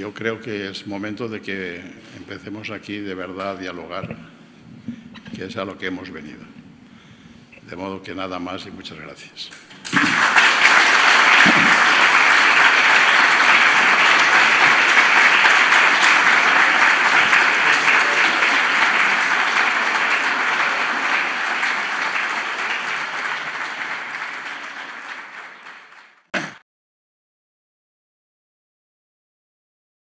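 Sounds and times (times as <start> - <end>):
audience applause: 9.7 - 26.3.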